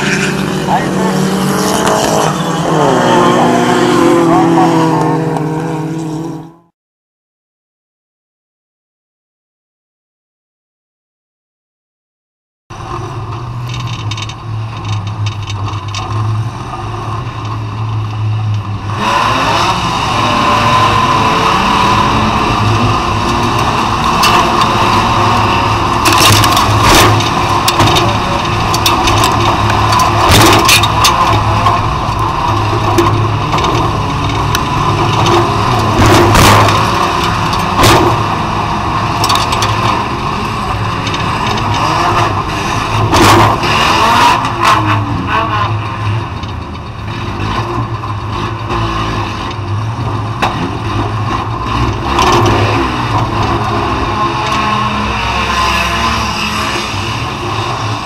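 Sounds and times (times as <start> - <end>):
car engine revving: 0.0 - 6.7, 12.8 - 58.0.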